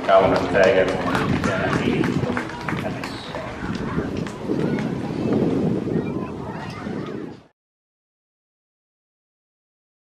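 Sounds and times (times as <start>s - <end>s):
voices talking: 0.0s - 7.5s.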